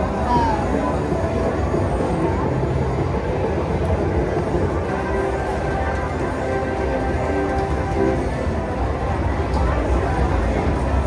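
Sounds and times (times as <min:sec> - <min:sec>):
slot machine low rumble: 0:00.0 - 0:11.0.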